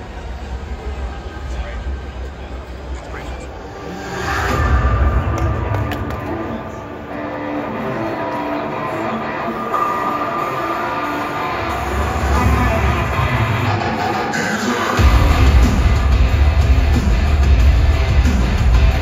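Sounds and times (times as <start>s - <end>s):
music over public address system: 0.1s - 19.0s
deep bass rumble: 15.0s - 19.0s.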